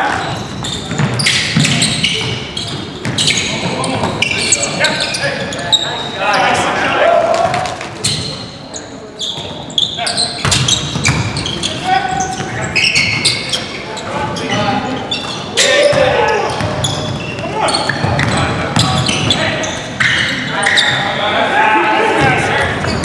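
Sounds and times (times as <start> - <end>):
players shouting: 6.0 - 7.8, 15.5 - 16.7, 20.4 - 22.9.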